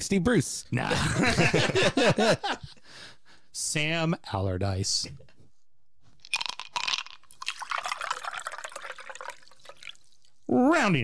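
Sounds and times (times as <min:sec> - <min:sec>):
liquid pouring and splashing: 0:06.3 - 0:10.5.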